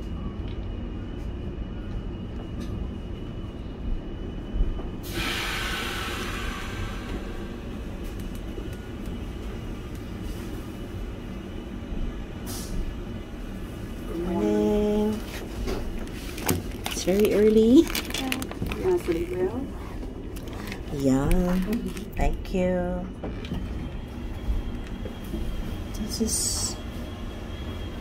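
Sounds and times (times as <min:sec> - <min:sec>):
train carriage rumbling on rails: 0:00.0 - 0:28.0
air hissing: 0:05.0 - 0:07.8.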